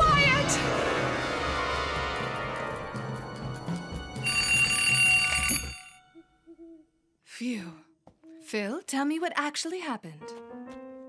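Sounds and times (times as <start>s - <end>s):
alarm clock bell ringing: 4.2s - 6.0s.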